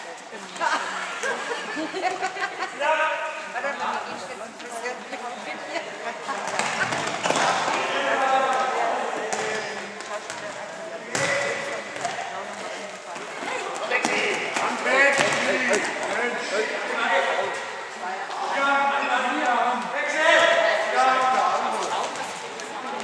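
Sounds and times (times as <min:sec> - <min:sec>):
voices shouting in a hall: 0:07.2 - 0:09.9, 0:13.4 - 0:23.0.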